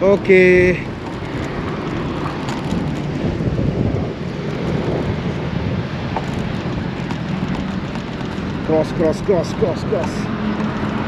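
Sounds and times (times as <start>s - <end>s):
road traffic: 0.0s - 11.0s
wind noise on microphone: 0.0s - 11.0s.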